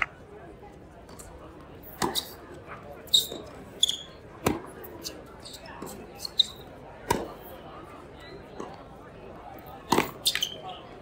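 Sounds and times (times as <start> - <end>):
racket hitting tennis ball: 1.8 - 2.4, 4.4 - 4.8, 7.0 - 7.4, 9.9 - 10.5
sneaker squeaks: 2.0 - 2.4, 3.0 - 4.2, 5.0 - 6.7, 9.9 - 10.9.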